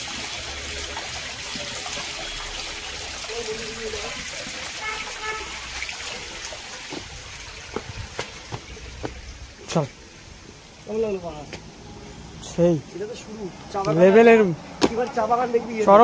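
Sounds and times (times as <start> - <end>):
water trickling down rock: 0.0 - 16.0.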